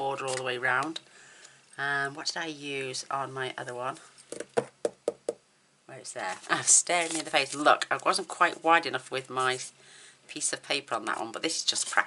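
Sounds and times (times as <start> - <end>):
objects knocking on desk: 4.3 - 5.4.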